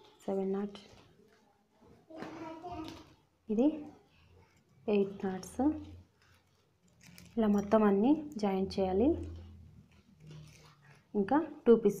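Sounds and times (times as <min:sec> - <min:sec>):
plastic wire rustling: 0:00.0 - 0:08.5, 0:09.2 - 0:11.2.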